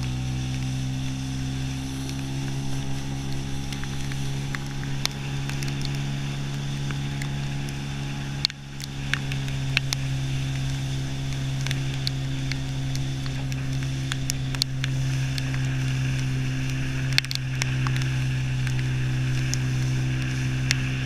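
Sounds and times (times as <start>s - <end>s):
outboard motor running: 0.0s - 21.0s.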